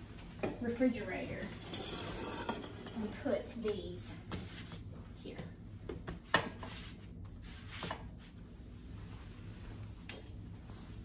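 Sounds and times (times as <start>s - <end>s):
canisters rubbing as slid: 1.6s - 3.1s.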